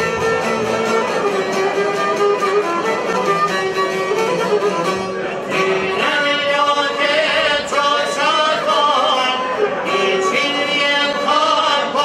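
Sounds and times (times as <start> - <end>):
bowed violin: 0.0 - 12.0
plucked long-necked lute: 0.0 - 12.0
man singing: 5.5 - 12.0.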